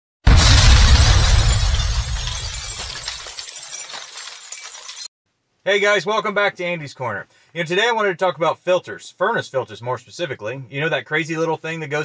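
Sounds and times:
sudden loud hit with deep boom: 0.2s - 2.7s
crashing noise: 0.2s - 5.1s.

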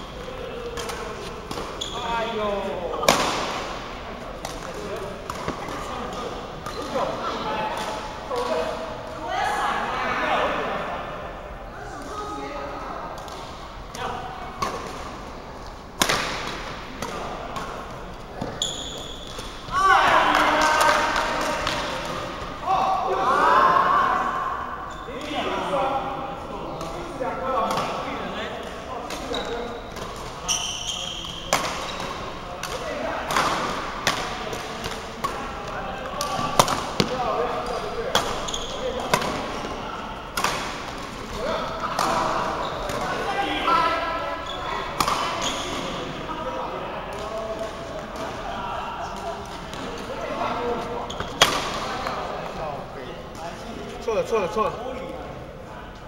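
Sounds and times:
voices in large hall: 0.0s - 56.0s.

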